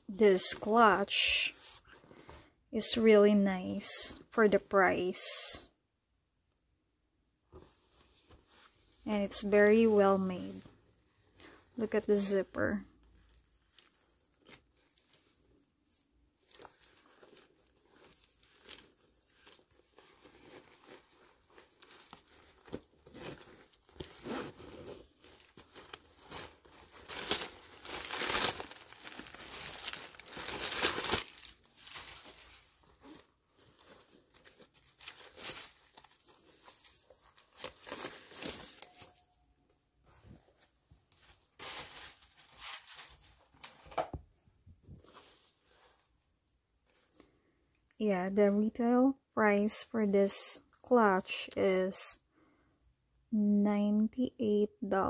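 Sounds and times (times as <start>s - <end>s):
paper crinkling and rustling: 13.0s - 39.3s, 40.1s - 44.1s.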